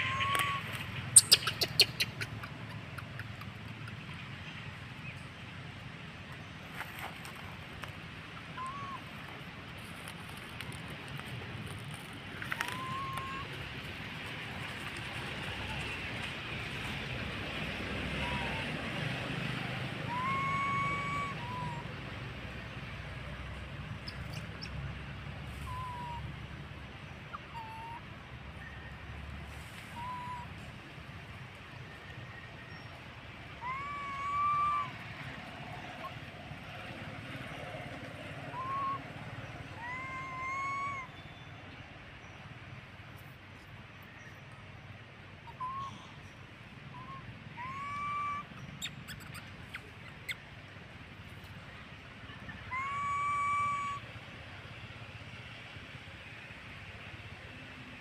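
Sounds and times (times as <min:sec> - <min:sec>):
baby monkey coo calls: 0:00.0 - 0:03.5, 0:08.4 - 0:09.1, 0:12.4 - 0:13.6, 0:18.2 - 0:18.8, 0:19.9 - 0:22.0, 0:25.6 - 0:26.3, 0:27.3 - 0:28.1, 0:29.9 - 0:30.6, 0:33.5 - 0:36.3, 0:38.5 - 0:41.2, 0:45.5 - 0:46.2, 0:46.9 - 0:50.4, 0:52.3 - 0:54.1
outdoor background hiss: 0:00.0 - 0:58.0.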